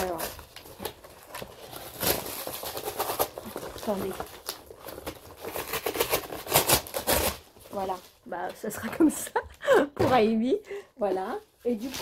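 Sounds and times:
cardboard box being torn: 0.0s - 8.1s.

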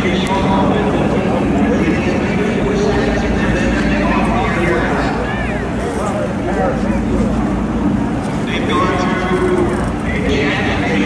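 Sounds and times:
low engine drone: 0.0s - 11.0s
people talking: 0.0s - 11.0s.

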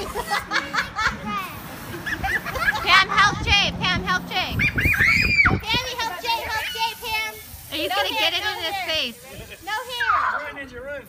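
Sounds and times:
children laughing and chattering: 0.0s - 11.0s
child squealing: 4.5s - 5.8s.

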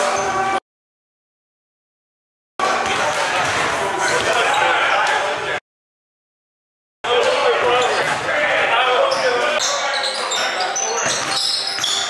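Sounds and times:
people talking: 2.6s - 5.6s, 7.1s - 12.0s.

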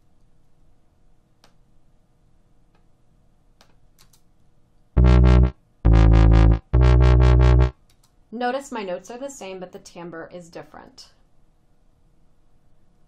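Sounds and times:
pulsing wobble bass notes: 5.0s - 7.7s.

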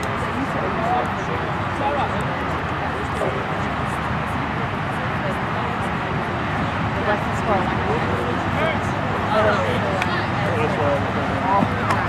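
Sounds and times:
steady rushing background noise: 0.0s - 12.0s.

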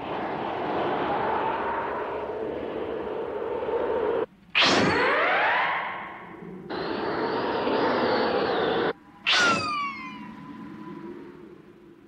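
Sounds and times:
whoosh with falling whistle tones: 0.0s - 11.1s.

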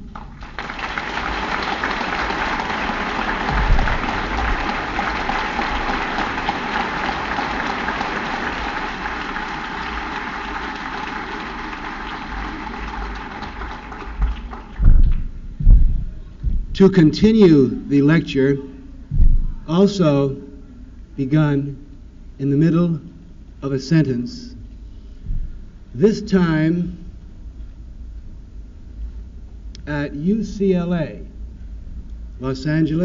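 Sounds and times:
audience applauding: 0.0s - 15.4s
low thumps: 1.8s - 7.6s, 14.1s - 17.4s, 19.0s - 19.7s.

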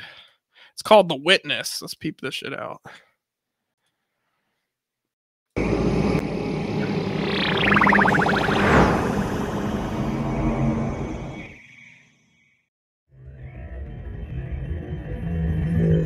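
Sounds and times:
cinematic rumble: 5.6s - 11.6s
falling whoosh: 6.8s - 11.6s.

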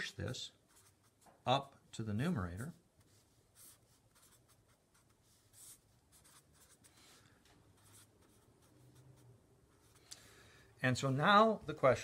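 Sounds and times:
marker scratching on paper: 0.0s - 1.4s, 2.6s - 10.1s.

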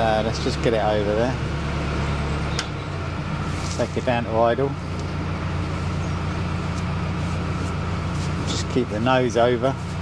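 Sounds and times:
boat engine idling: 0.0s - 10.0s.

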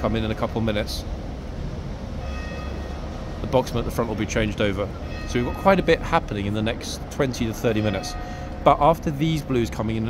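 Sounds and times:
bus engine rumble driving past: 0.0s - 10.0s
faint high whine: 0.0s - 10.0s.

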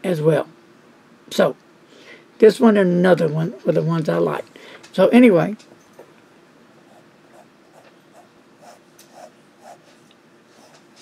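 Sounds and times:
pen nib scratching on paper: 6.9s - 11.0s.

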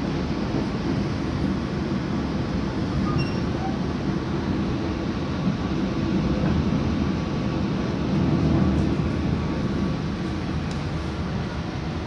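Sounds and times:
train wheels rolling on rails: 0.0s - 12.0s.

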